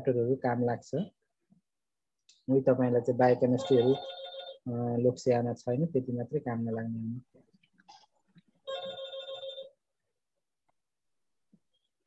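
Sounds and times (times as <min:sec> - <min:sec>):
person speaking: 0:02.4 - 0:04.1, 0:04.7 - 0:07.3
electronic phone ring tone: 0:03.6 - 0:04.7, 0:08.7 - 0:09.8.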